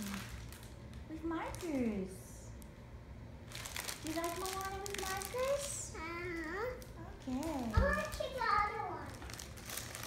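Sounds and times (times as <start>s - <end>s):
paper crinkling: 3.5s - 10.0s.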